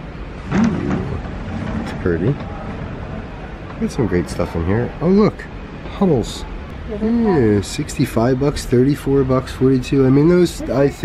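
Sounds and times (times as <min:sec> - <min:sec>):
low rumble of room noise: 0:00.0 - 0:11.0.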